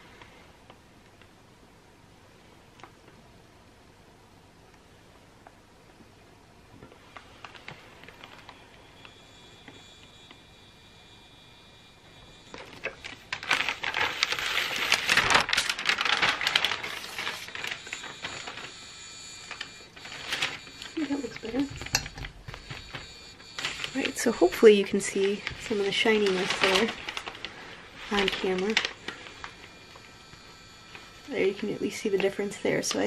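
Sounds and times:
paper sheet crackling and rustling: 7.0 - 10.2, 12.2 - 33.0.

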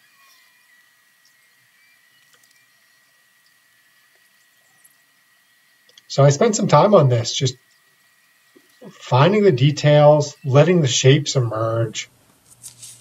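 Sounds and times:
faint high-pitched tone: 0.0 - 3.2, 8.8 - 12.1.

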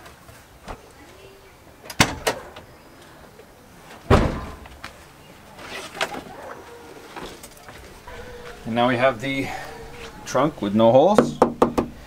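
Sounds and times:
car door slamming: 4.1 - 4.6.

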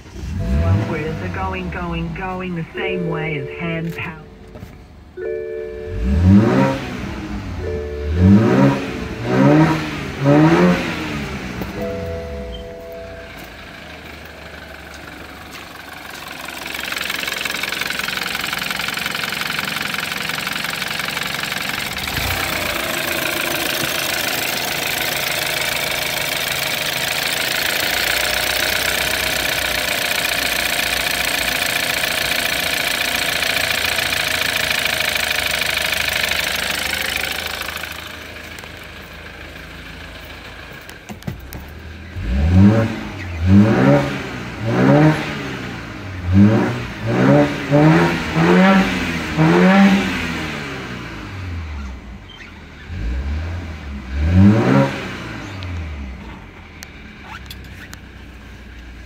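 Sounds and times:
car engine revving and idling: 0.0 - 59.0.

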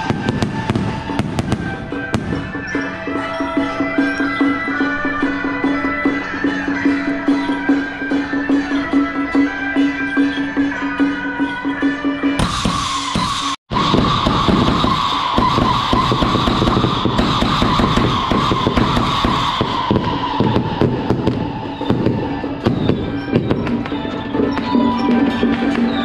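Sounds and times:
firework crackles: 0.0 - 2.7, 13.7 - 24.7
music: 0.0 - 26.0
firework fountain hissing: 13.7 - 24.6.

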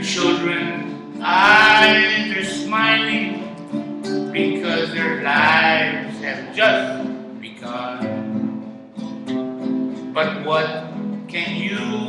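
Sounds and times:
man singing: 0.0 - 3.5, 4.2 - 8.4, 10.2 - 12.0
acoustic guitar strumming: 0.0 - 12.0.

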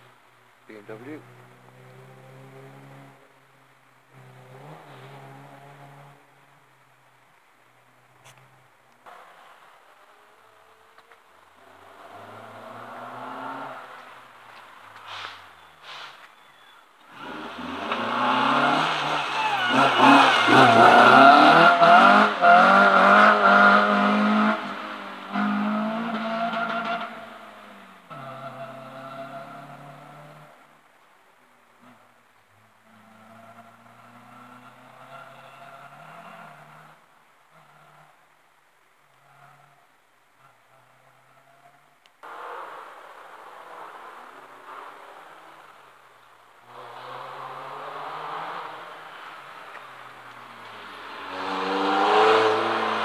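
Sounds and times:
rally car engine revving: 11.6 - 14.2, 17.1 - 30.6, 46.6 - 53.0.

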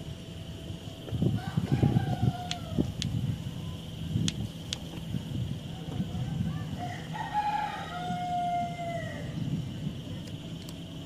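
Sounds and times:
rooster crowing: 1.3 - 2.9, 6.1 - 9.4.

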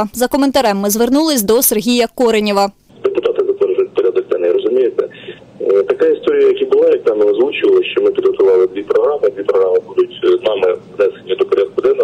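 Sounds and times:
man speaking over telephone: 2.9 - 12.0.

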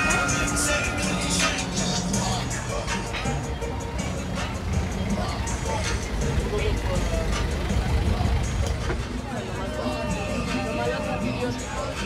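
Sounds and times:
minibus engine rumble passing: 0.0 - 12.0
people chattering: 0.0 - 12.0.

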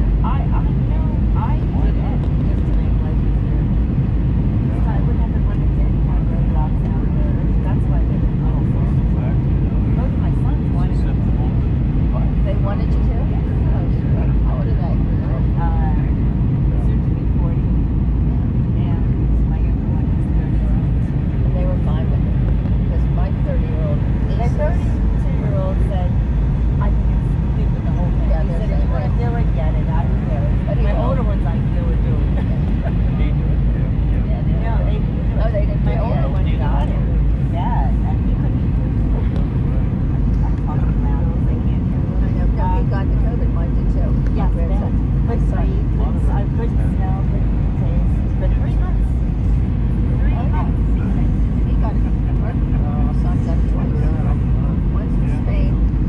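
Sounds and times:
airplane cabin engine rumble: 0.0 - 56.0
faint passenger chatter: 0.0 - 56.0.

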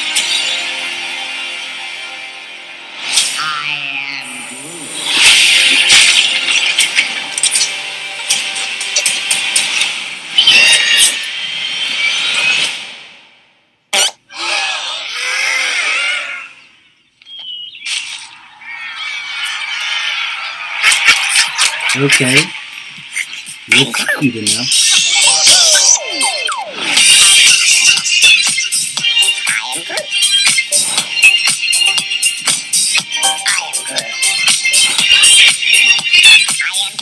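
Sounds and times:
film trailer music: 0.0 - 3.4, 4.4 - 13.4
sound effects: 3.0 - 13.2, 13.9 - 14.3, 17.8 - 28.7
pitch sliding sounds: 24.0 - 28.0.

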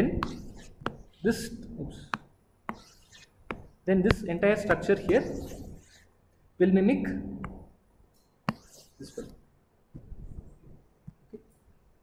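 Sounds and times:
stylus tapping tablet screen: 0.1 - 1.4, 2.0 - 6.1, 8.4 - 9.0.

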